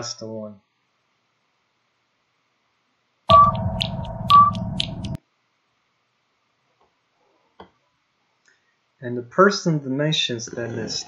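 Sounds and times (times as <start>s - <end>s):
sonar-like beeps: 3.3s - 5.2s
steady tone and low hum: 3.3s - 5.2s.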